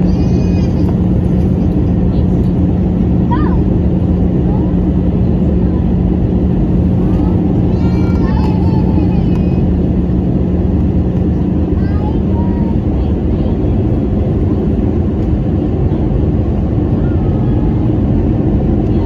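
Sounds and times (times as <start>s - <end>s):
faint voices: 0.0s - 10.1s, 11.6s - 19.0s
jet engine roar: 0.0s - 19.0s
low hum: 0.0s - 19.0s.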